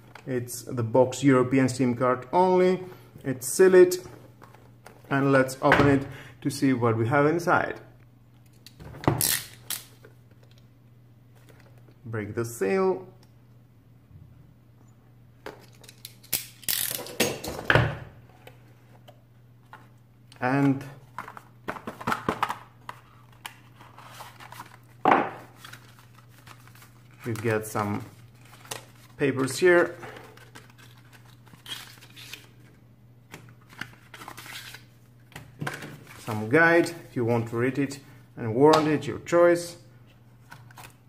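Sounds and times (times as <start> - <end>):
paper rustling: 22.8 - 32.6.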